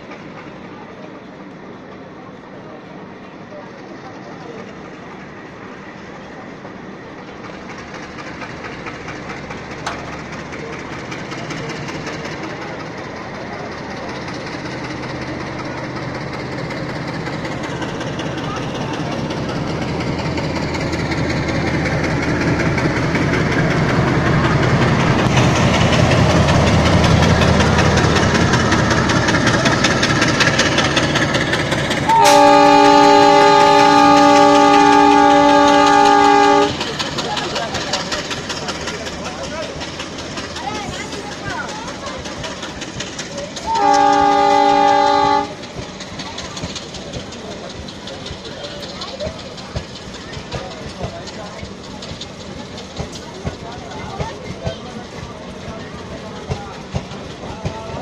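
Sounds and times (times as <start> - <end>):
diesel locomotive engine: 0.0 - 58.0
train wheels clattering on rails: 6.8 - 58.0
multi-tone train horn: 32.1 - 36.8, 43.6 - 45.6.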